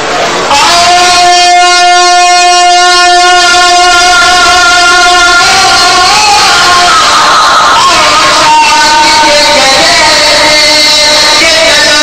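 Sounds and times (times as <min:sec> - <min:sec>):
man singing a held note: 0:00.5 - 0:12.0.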